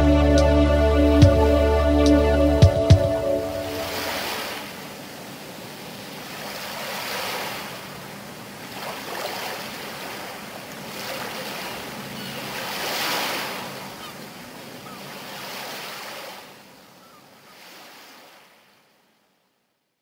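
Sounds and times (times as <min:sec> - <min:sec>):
faint low drone: 0:00.0 - 0:04.1
surf-like wash of noise: 0:03.0 - 0:18.8.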